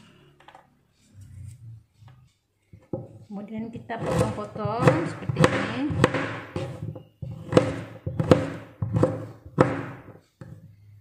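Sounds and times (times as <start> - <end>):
knife chopping on plastic board: 4.0 - 10.6.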